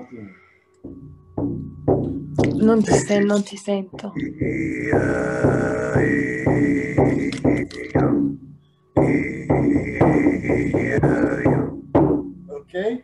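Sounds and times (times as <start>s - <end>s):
throat chanting drone: 0.9s - 12.8s.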